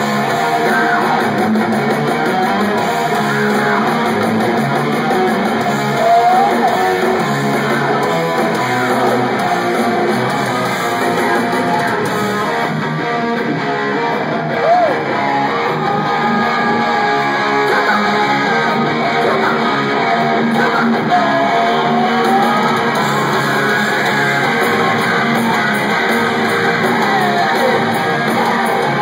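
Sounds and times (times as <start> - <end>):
electric guitars: 0.0 - 29.0
live rock band playing: 0.0 - 29.0.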